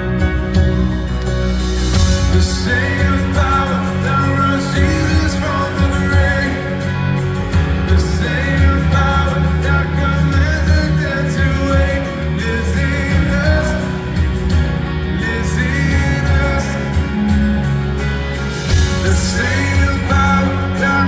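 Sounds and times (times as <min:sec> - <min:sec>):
backing band playing: 0:00.0 - 0:21.0
strummed acoustic guitar: 0:00.0 - 0:21.0
man singing: 0:01.9 - 0:21.0.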